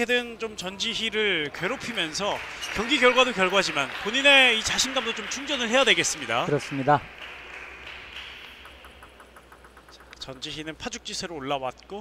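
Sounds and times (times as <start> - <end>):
table tennis ball bouncing: 7.1 - 11.1.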